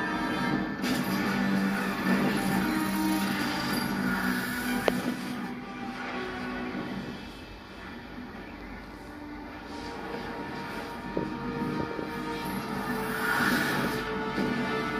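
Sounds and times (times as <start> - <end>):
film score low sustained notes: 0.0 - 14.9.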